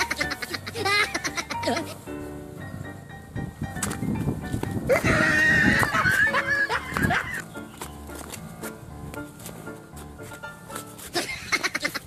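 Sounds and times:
background music: 0:00.0 - 0:12.0
loud wavering cry: 0:04.9 - 0:06.4.

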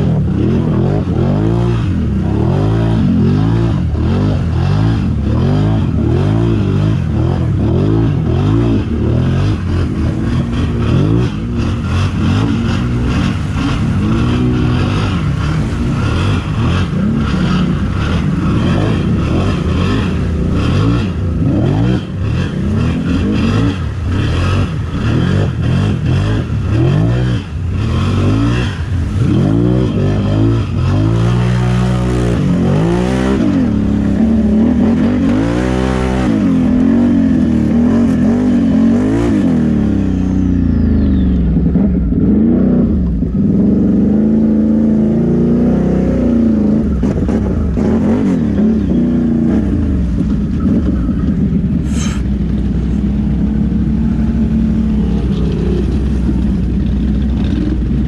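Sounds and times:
atv engine revving: 0:00.0 - 0:58.0
water splashing: 0:02.1 - 0:39.0.

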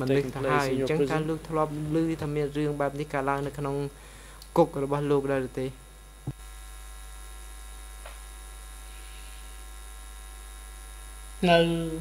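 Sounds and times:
person speaking: 0:00.0 - 0:05.8
electrical mains hum: 0:00.0 - 0:12.0.

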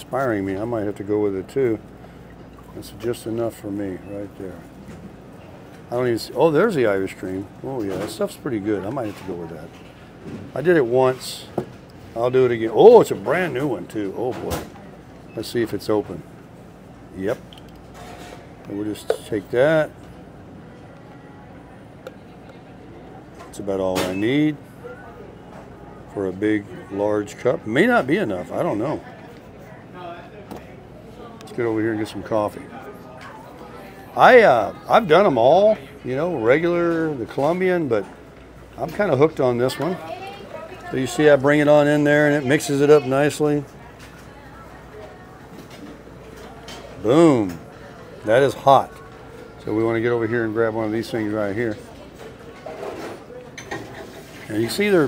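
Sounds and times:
store interior background noise: 0:00.0 - 0:55.0.

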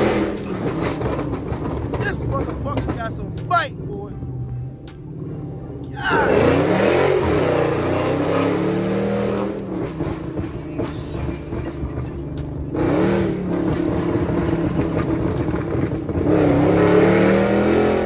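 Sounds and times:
car engine revving: 0:00.0 - 0:18.0
exhaust crackles: 0:00.0 - 0:18.0.

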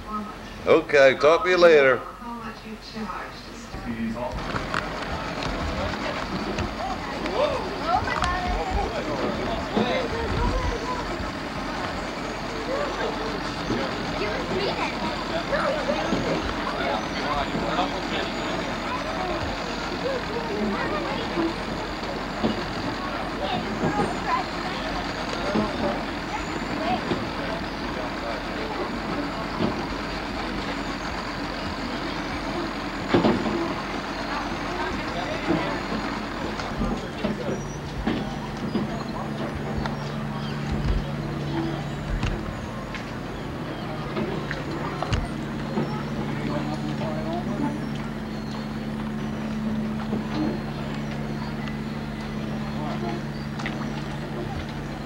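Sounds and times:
low hum: 0:00.0 - 0:55.0
outdoor background noise: 0:00.0 - 0:55.0
people talking indistinctly: 0:00.0 - 0:55.0.

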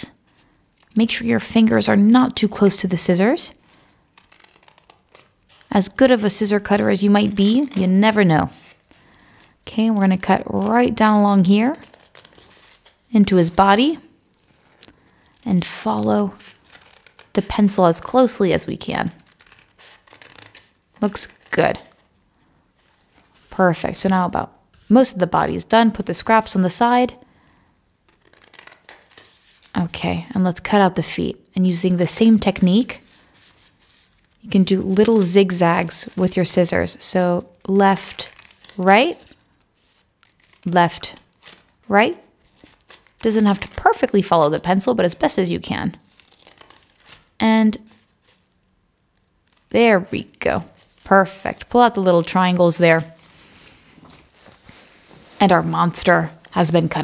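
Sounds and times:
scissors snipping paper: 0:04.2 - 0:08.8, 0:09.8 - 0:22.1, 0:28.1 - 0:29.8, 0:34.2 - 0:39.4, 0:40.2 - 0:41.7, 0:42.4 - 0:45.3, 0:46.0 - 0:48.6.

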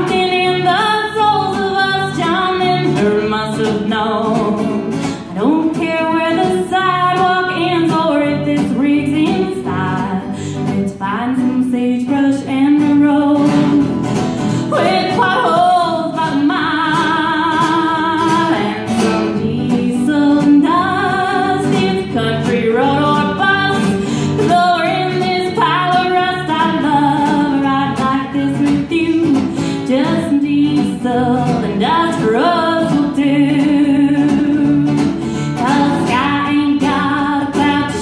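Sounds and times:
acoustic guitar strumming: 0:00.0 - 0:38.0
woman singing country song: 0:00.0 - 0:38.0.

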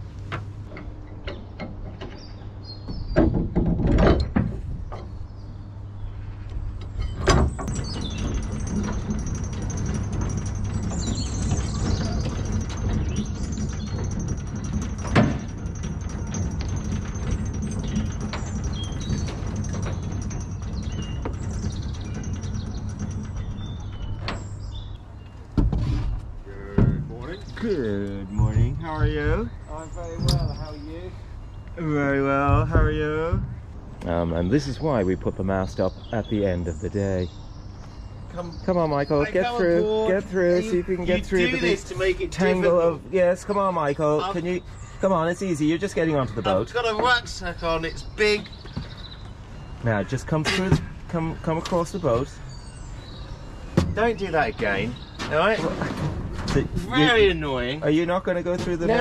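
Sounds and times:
steady mechanical noise: 0:00.0 - 0:59.0
loud knocks: 0:01.3 - 0:05.2, 0:07.0 - 0:24.7, 0:25.5 - 0:30.8, 0:32.3 - 0:34.3, 0:53.6 - 0:59.0
metal chain clanking: 0:06.9 - 0:25.2.

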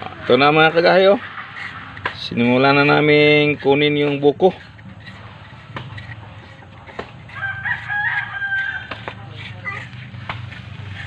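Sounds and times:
metal spoon scraping coconut: 0:00.0 - 0:11.0
rooster crowing: 0:07.3 - 0:09.0.

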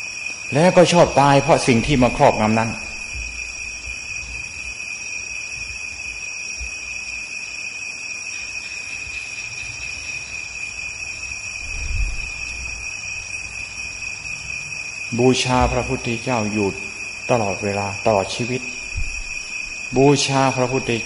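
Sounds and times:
constant hiss: 0:00.0 - 0:21.0
high-pitched whine: 0:00.0 - 0:21.0
faint low rumble: 0:11.6 - 0:14.2.

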